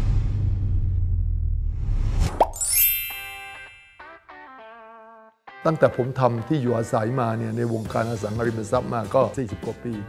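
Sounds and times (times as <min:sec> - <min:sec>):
falling plop sound effect: 0:02.3 - 0:03.7
background music with low bass: 0:05.7 - 0:10.0.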